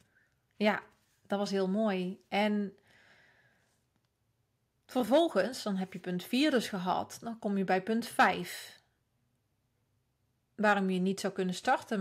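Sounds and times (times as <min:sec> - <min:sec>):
woman speaking: 0:00.6 - 0:02.8, 0:04.9 - 0:08.8, 0:10.6 - 0:12.0.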